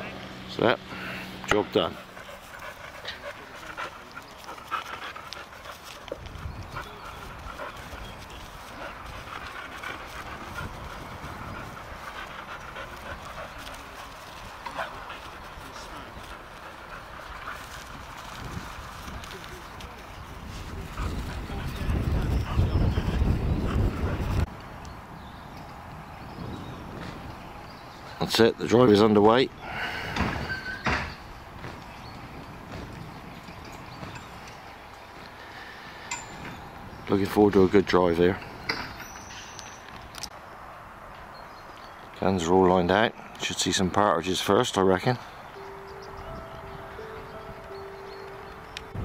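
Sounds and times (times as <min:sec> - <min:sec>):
faint voices: 0:00.8 - 0:05.6, 0:06.6 - 0:23.4
dogs panting: 0:00.8 - 0:24.5.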